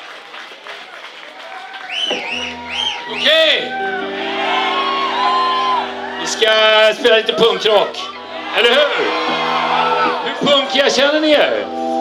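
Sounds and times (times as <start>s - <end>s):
person whooping: 1.4s - 6.4s.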